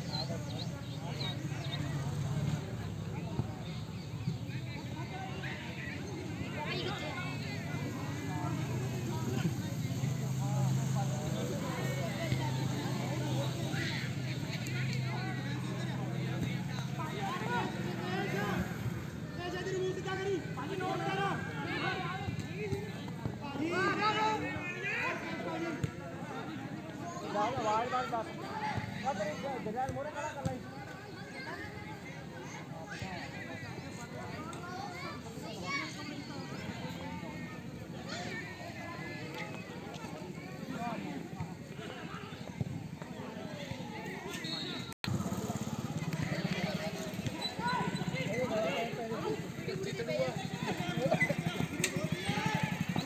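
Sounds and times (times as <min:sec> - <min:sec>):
football players shouting: 0:47.4 - 0:53.0.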